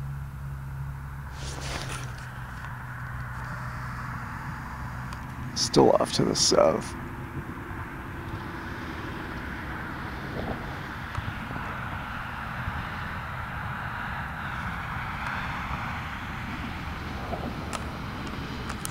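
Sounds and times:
distant engine drone: 0.0 - 18.9.

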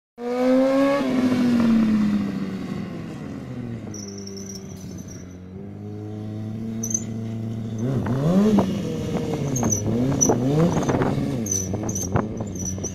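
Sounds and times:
motorcycle engine revving: 0.2 - 12.9.

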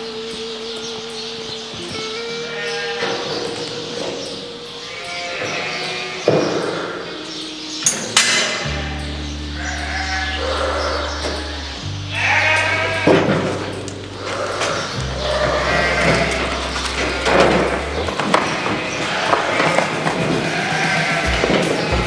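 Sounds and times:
instrumental music with low notes: 0.0 - 22.0
sheep bleating: 2.2 - 4.2, 4.8 - 7.4, 8.5 - 22.0.

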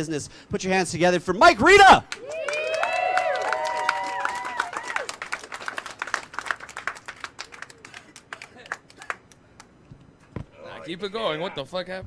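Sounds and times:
cheering shouts: 1.8 - 5.2
audience applauding: 2.1 - 9.4.

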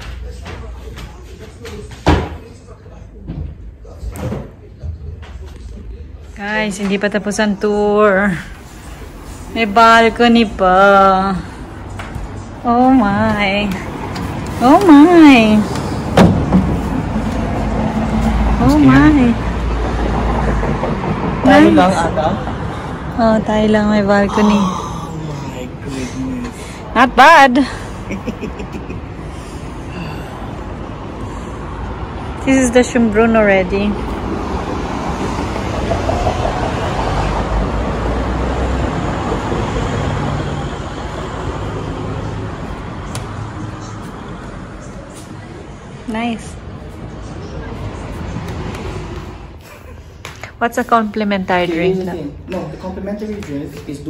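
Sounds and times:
road traffic rumble: 0.0 - 54.0.

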